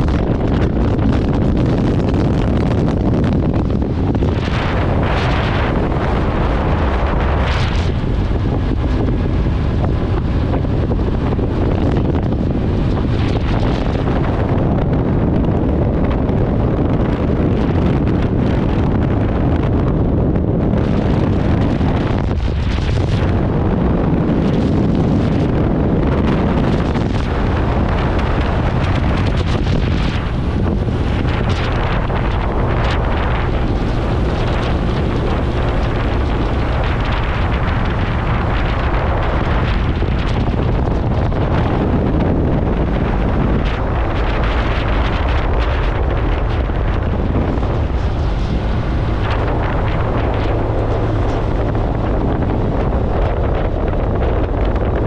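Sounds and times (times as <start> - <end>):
motorcycle ride rumble: 0.0 - 55.0
wind buffeting microphone: 0.0 - 55.0.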